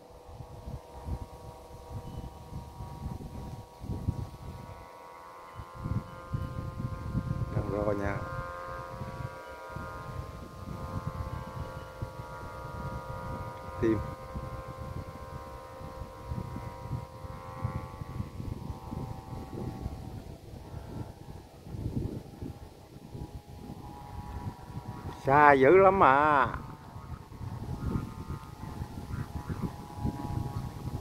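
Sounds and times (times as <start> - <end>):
kite flutes siren-like chord: 0.0 - 31.0
wind rumble on microphone: 0.0 - 31.0.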